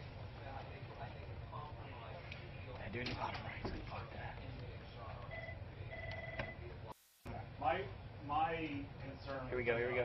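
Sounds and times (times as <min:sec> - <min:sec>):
electronic telephone ringing: 0:05.3 - 0:06.6.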